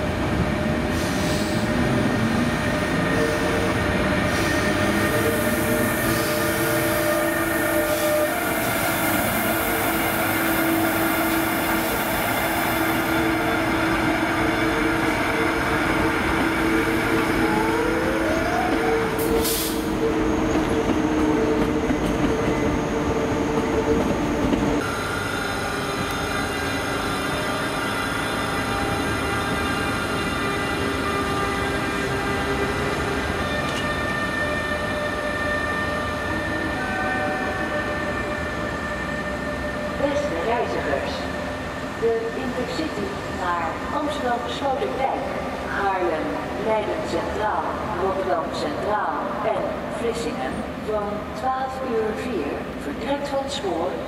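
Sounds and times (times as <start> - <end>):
electric locomotive whining: 0.0 - 49.0.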